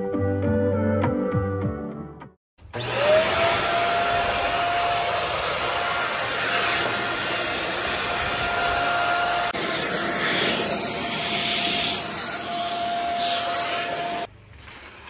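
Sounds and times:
electric motor whine: 2.7 - 14.3.

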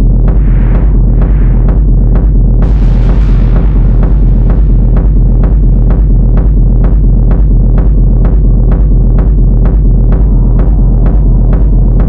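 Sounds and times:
deep droning bass: 0.0 - 12.0
techno kick drum: 0.0 - 12.0.

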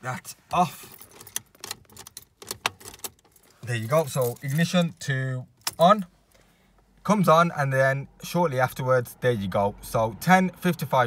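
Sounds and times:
car keys jangling and clicking: 0.5 - 6.4.

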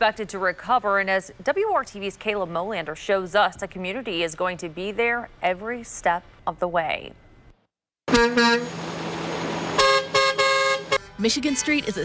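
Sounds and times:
passing traffic rushing: 8.1 - 11.1
truck horns honking: 8.1 - 11.8.

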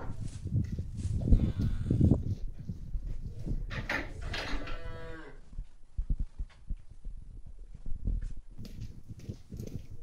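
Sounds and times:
cow mooing: 4.5 - 5.4.

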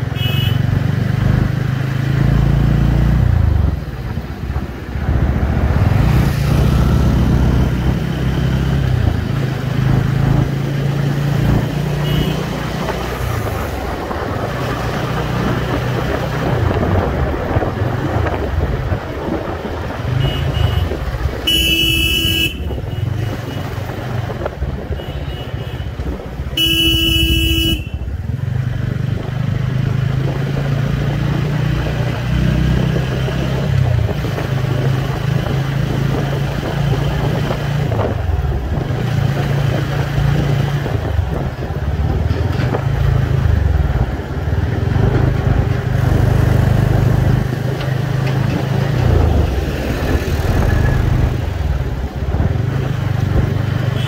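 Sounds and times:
vehicle horn honking: 0.2 - 0.6, 12.0 - 12.5, 20.2 - 23.2, 26.6 - 28.0.

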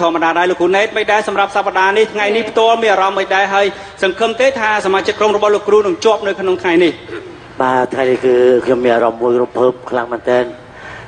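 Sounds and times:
man talking: 0.0 - 10.8.

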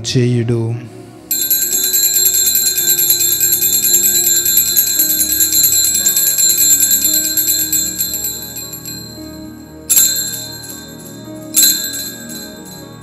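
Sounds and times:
soft instrumental music: 0.0 - 13.0
small bells shaken rapidly: 1.3 - 9.2, 9.8 - 13.0.

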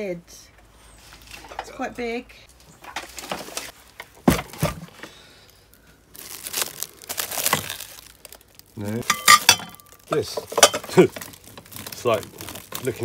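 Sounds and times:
plastic wrap crinkling: 5.4 - 13.0.

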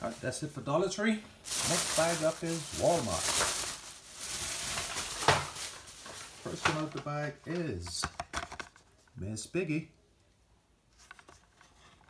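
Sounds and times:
plastic bag rustling: 0.0 - 7.2.

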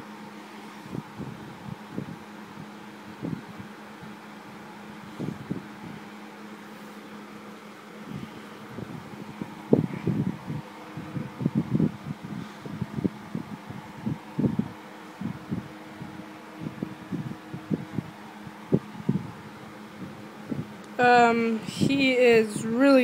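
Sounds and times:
low fan hum: 0.0 - 23.0.

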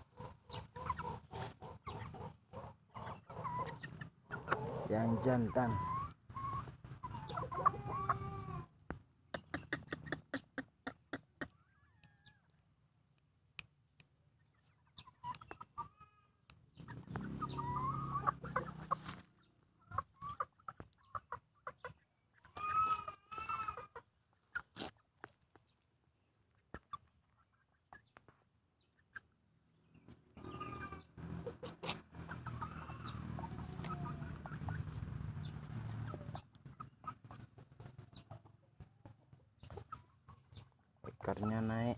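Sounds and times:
cockerel clucking: 0.0 - 12.6, 14.4 - 19.2, 30.4 - 35.0.

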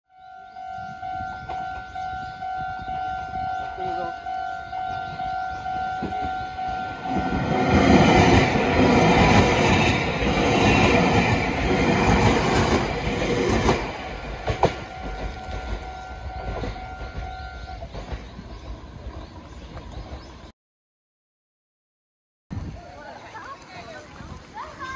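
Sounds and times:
electric train rumbling: 0.1 - 20.5
train wheels clicking over rail joints: 7.0 - 20.4.

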